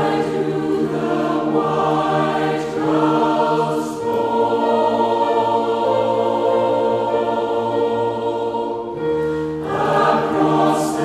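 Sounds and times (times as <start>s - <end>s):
mixed choir singing in harmony: 0.0s - 11.0s.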